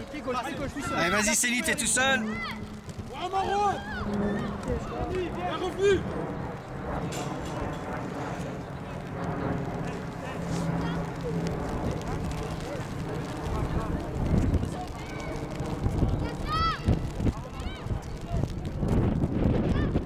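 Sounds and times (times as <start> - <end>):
voices calling outdoors: 0.0 - 18.8
low rumble on microphone: 1.7 - 20.0.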